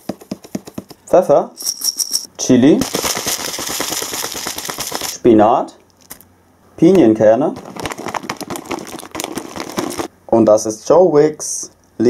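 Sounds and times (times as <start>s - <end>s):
chili flakes rattling in plastic bag: 2.8s - 5.2s, 7.6s - 10.1s.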